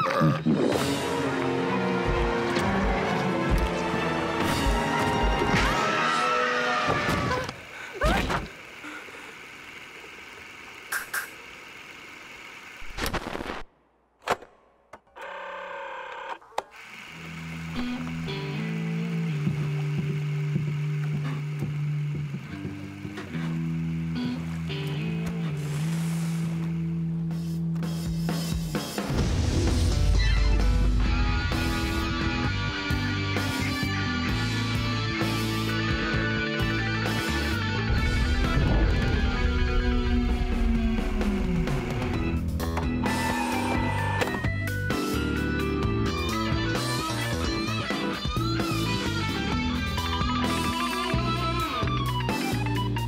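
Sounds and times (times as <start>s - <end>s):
film score music: 0.0s - 7.9s, 17.6s - 53.0s
explosion boom: 37.9s - 42.2s
sudden hit: 38.0s - 42.1s.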